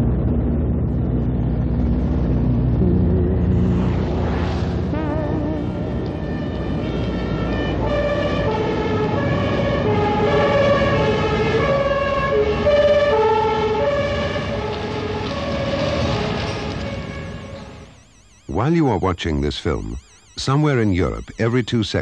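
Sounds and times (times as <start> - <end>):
passing traffic: 0.0 - 18.0
two-tone police siren: 4.9 - 22.0.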